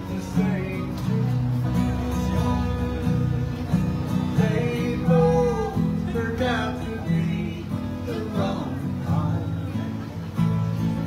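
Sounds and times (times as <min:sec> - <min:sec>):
acoustic guitars strummed: 0:00.0 - 0:11.0
man and woman singing in harmony: 0:04.4 - 0:09.8.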